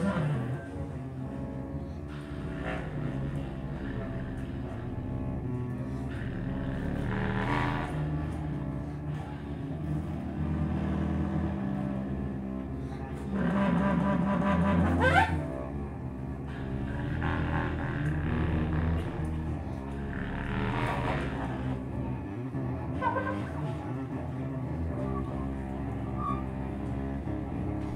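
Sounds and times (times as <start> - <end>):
bowed cello drone: 0.0 - 27.9
contrabass clarinet low tones: 0.0 - 27.9.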